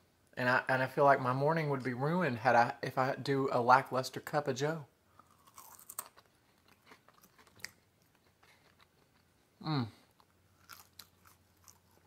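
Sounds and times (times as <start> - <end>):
faint chewing: 5.1 - 12.0.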